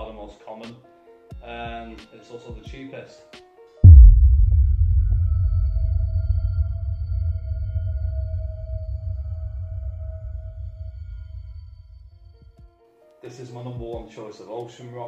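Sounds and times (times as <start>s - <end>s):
deep bass boom: 3.8s - 12.3s.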